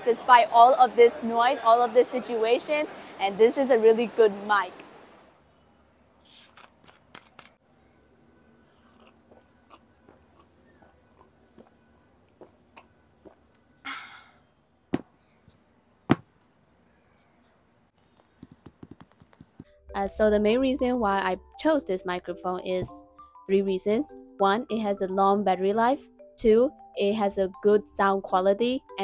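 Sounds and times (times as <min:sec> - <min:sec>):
mouth and swallowing noises: 0:08.8 - 0:10.5.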